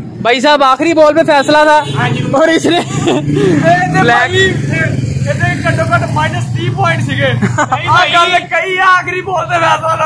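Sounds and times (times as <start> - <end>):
men talking: 0.2 - 10.0.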